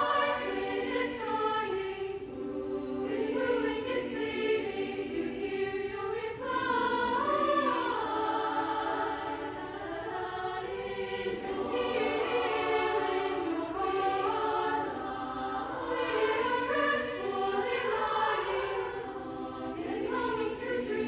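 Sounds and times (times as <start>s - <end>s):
female choir singing: 0.0s - 21.0s.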